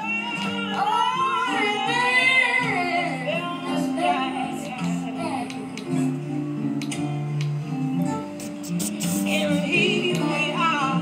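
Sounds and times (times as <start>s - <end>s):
woman singing: 0.0s - 6.2s, 9.2s - 11.0s
acoustic guitar: 0.0s - 11.0s.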